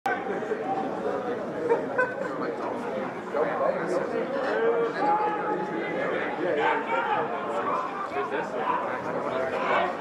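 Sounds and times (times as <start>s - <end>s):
players talking and calling: 0.1s - 10.0s.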